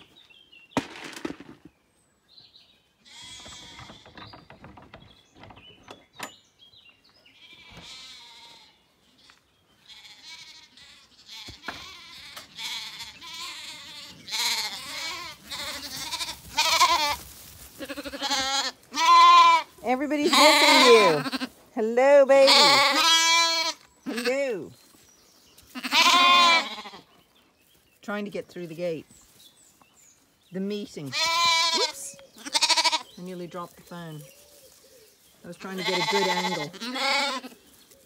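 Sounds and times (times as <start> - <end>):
lambs bleating: 3.0 - 4.2, 7.3 - 21.6, 22.3 - 24.5, 25.7 - 27.1, 31.0 - 33.2, 35.5 - 37.6.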